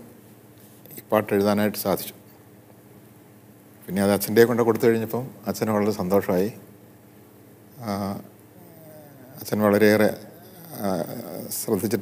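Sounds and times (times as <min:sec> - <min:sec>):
man's low murmur: 0:07.7 - 0:12.0.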